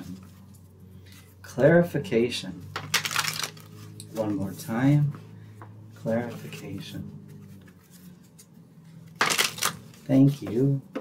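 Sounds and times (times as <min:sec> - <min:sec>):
low steady hum: 0:00.0 - 0:11.0
cards being handled: 0:02.7 - 0:04.6, 0:06.2 - 0:10.6.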